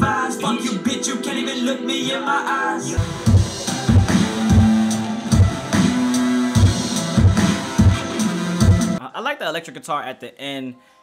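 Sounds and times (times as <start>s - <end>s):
hip-hop instrumental: 0.0s - 10.8s
heavy kick drum hits: 3.0s - 6.0s
long held bass notes: 3.0s - 9.0s.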